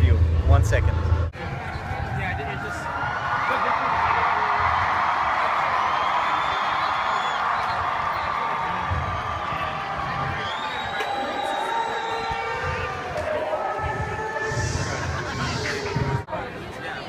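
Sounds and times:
crowd cheering: 0:01.4 - 0:16.3.

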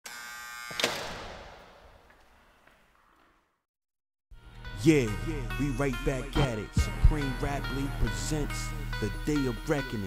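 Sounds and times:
electric buzz: 0:00.1 - 0:01.0.

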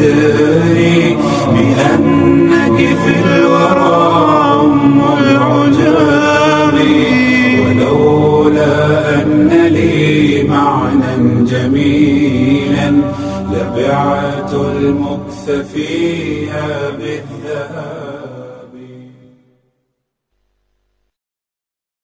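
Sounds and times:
man singing a cappella: 0:00.0 - 0:19.4.

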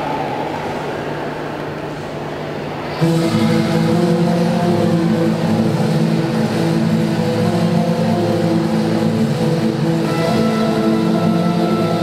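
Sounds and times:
droning chords over sound system: 0:02.9 - 0:12.0.

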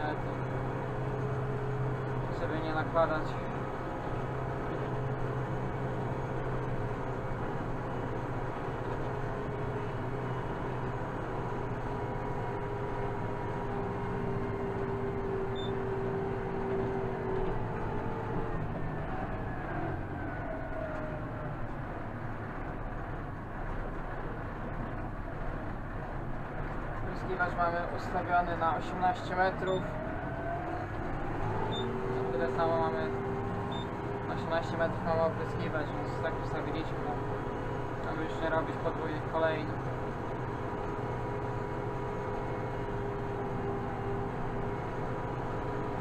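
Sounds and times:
tractor diesel engine running: 0:00.0 - 0:46.0.

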